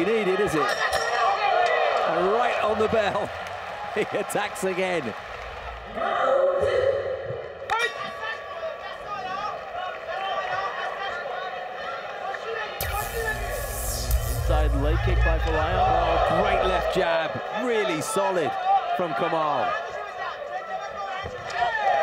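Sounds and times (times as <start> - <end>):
crowd voices and shouting: 0.0 - 22.0
high hiss: 12.8 - 16.7.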